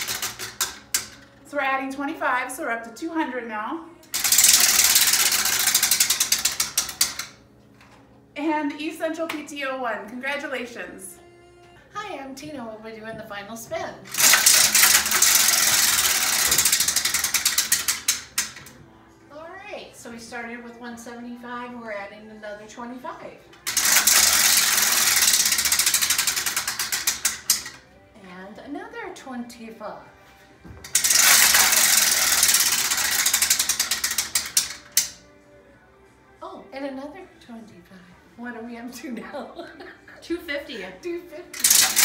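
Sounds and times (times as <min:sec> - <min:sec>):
prize wheel pointer clicking: 0:00.0 - 0:01.2, 0:04.1 - 0:07.4, 0:14.1 - 0:18.7, 0:23.6 - 0:27.8, 0:30.9 - 0:35.2, 0:41.5 - 0:42.0.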